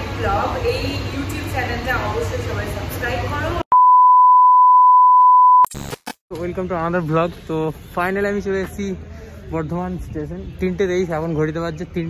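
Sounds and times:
test-tone beep: 3.7s - 5.7s
crackling static: 5.2s - 6.2s.

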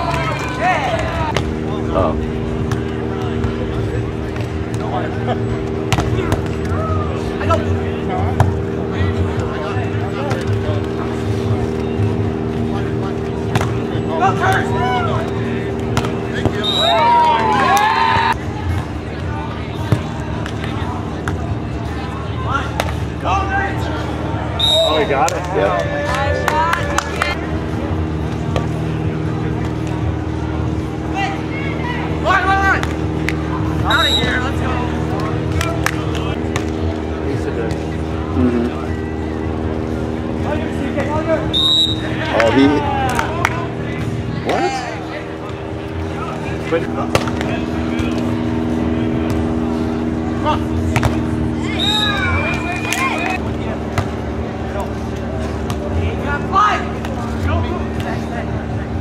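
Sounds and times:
indistinct voices: 0.0s - 53.8s
steady droning hum: 0.0s - 59.0s.

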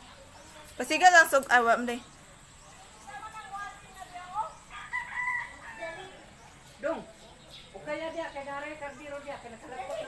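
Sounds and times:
faint rooster crowing: 4.6s - 6.3s.

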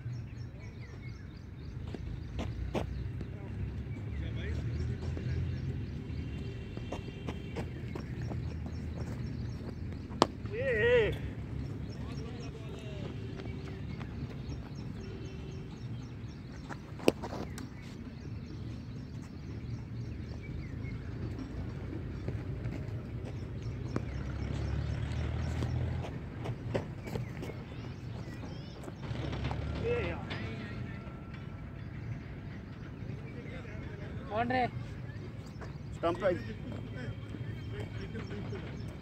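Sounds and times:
distant shouts: 10.3s - 16.0s, 28.8s - 31.8s.

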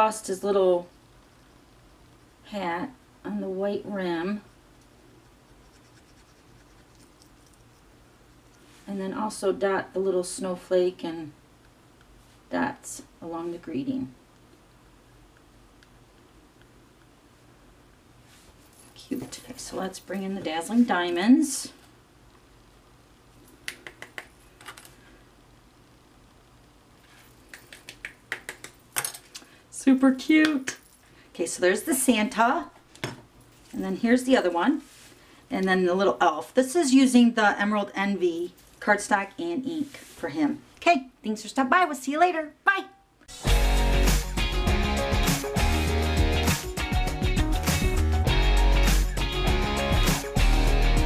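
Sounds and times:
pen scratching on cardstock: 5.2s - 7.1s.

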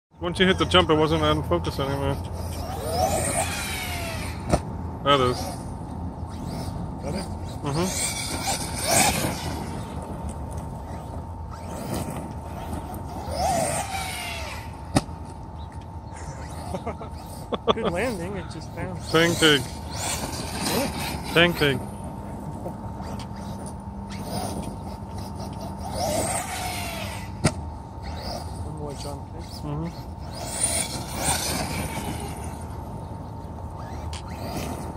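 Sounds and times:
electric motor whining: 0.4s - 34.9s.

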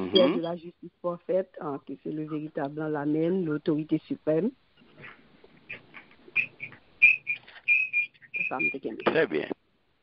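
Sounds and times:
short high chirping whistles: 6.4s - 8.8s.

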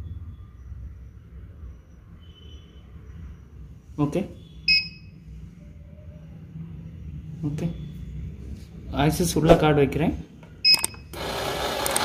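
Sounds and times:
short high electronic beep: 4.4s - 5.1s.

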